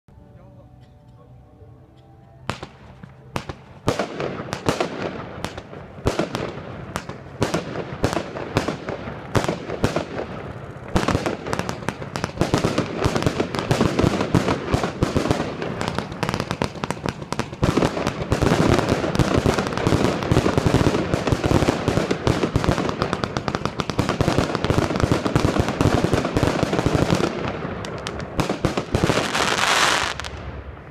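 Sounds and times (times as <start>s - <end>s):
firework cake firing: 2.5s - 30.9s.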